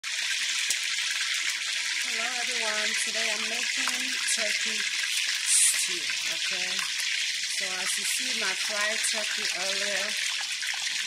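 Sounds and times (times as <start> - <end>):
hot oil sizzling and crackling: 0.0 - 11.0.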